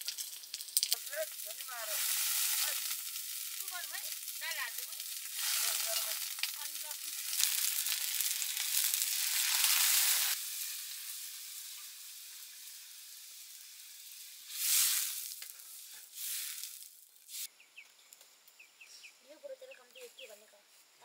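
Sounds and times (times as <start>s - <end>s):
hot oil sizzling in a wok: 0.0s - 17.5s.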